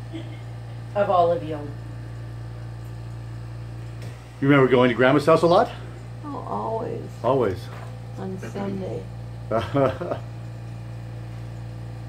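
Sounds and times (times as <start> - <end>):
air conditioner running: 0.0 - 12.0.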